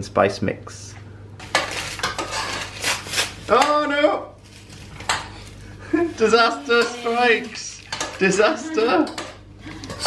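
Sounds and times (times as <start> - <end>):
crinkly packet rustling: 4.4 - 7.6.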